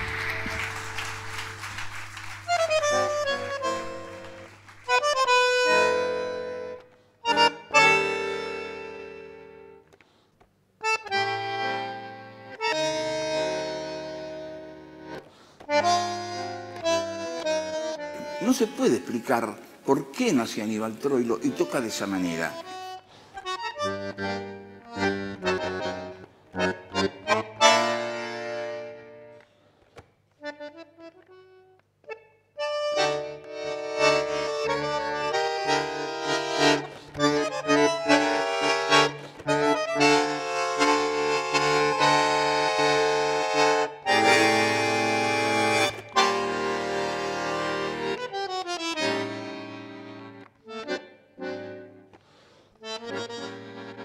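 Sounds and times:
bandoneon playing tango chords: 0.0 - 10.0, 10.8 - 29.5, 30.2 - 54.0.

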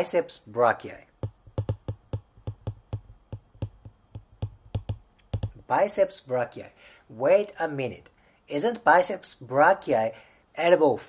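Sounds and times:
stylus tapping on glass screen: 1.2 - 5.6.

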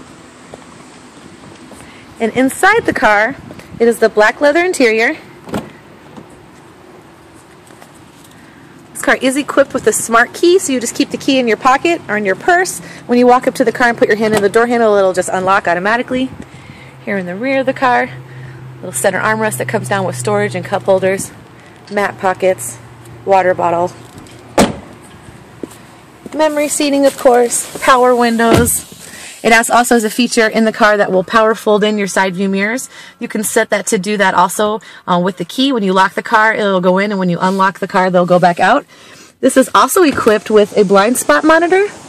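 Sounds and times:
outdoor background noise: 0.0 - 42.0
car door shutting thud: 5.4 - 6.3, 24.6 - 25.0, 28.4 - 28.9.

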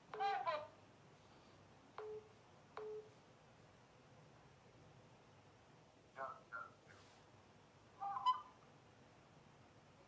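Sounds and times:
faint low room hum: 0.0 - 10.0.

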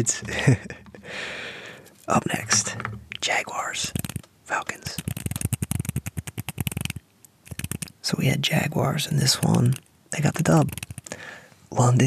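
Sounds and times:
rapid tapping on plastic helmets: 3.9 - 8.0, 9.3 - 11.2.

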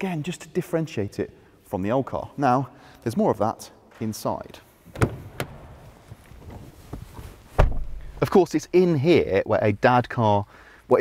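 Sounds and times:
car door latch clicking: 4.9 - 5.7.

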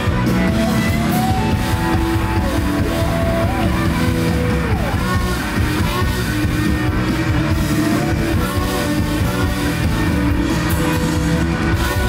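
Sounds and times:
electric guitar bending notes: 0.0 - 12.0
live rock band playing: 0.0 - 12.0.

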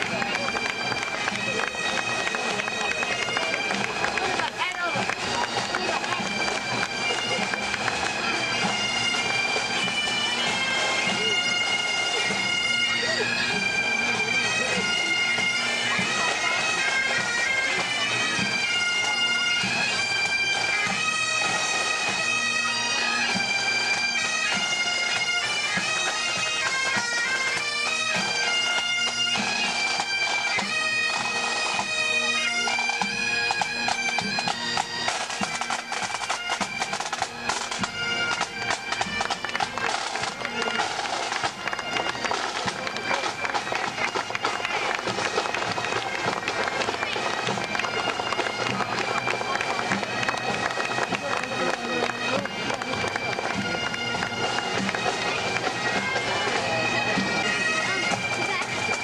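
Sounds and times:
crowd voices: 0.0 - 59.0
pipe band playing a march: 0.0 - 59.0.

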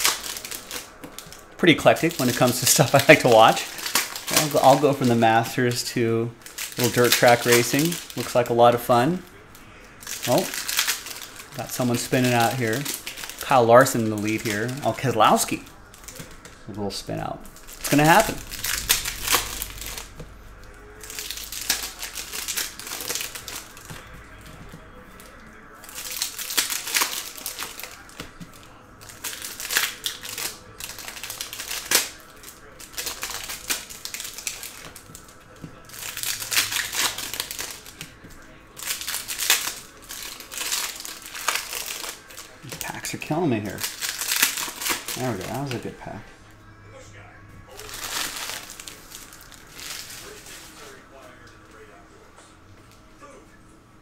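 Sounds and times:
foil wrappers crinkling: 0.0 - 46.4, 47.6 - 52.0.

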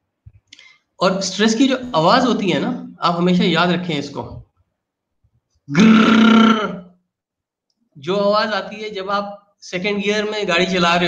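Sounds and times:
man imitating car engine: 5.7 - 6.8.

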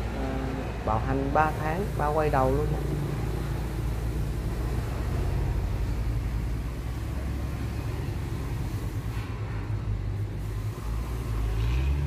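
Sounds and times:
car engine idling: 0.0 - 11.5.

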